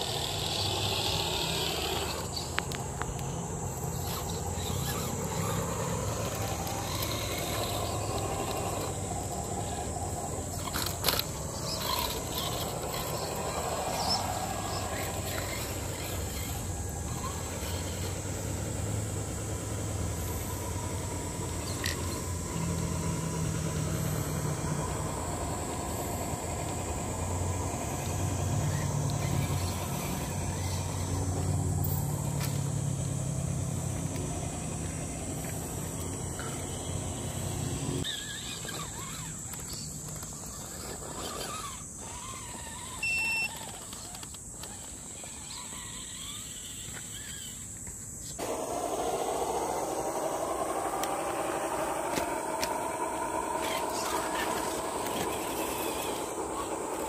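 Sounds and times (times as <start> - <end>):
electric motors whining: 0.0 - 57.0
steady high-pitched drone: 48.4 - 57.0.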